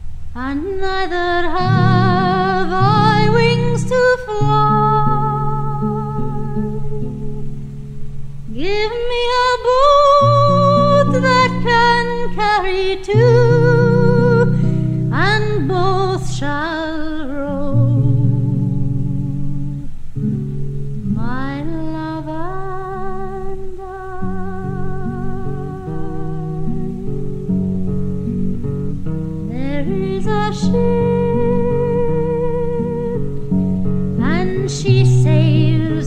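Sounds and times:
acoustic guitar: 0:00.0 - 0:36.0
woman singing folk ballad: 0:00.3 - 0:36.0.

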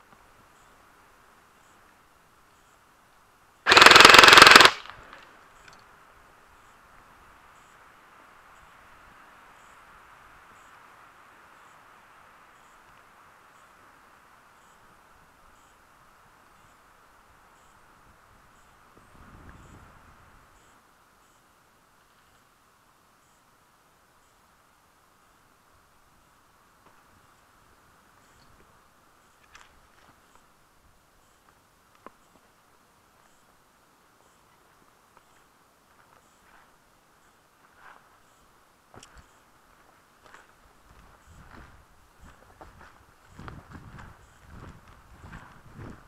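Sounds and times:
airsoft gun burst: 0:03.7 - 0:05.2.

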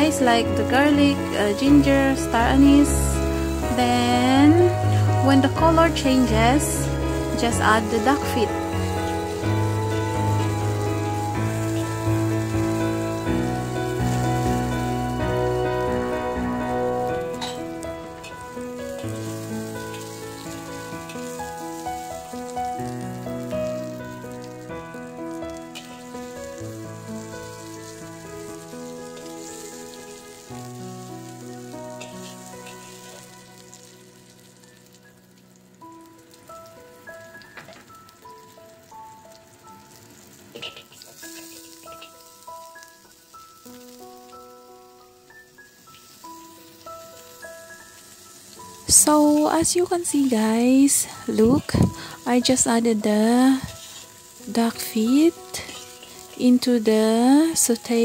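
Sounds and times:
aromatics sizzling in oil: 0:00.0 - 0:58.0
background music of held notes: 0:00.0 - 0:58.0
metal spatula stirring in wok: 0:17.3 - 0:22.1, 0:25.7 - 0:26.3, 0:27.4 - 0:30.2, 0:32.0 - 0:33.9, 0:40.5 - 0:42.2, 0:53.6 - 0:54.4, 0:55.5 - 0:56.5.

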